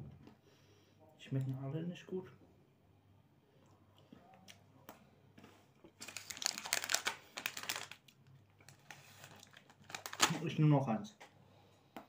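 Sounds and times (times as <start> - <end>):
snack packaging crinkling: 5.8 - 10.6.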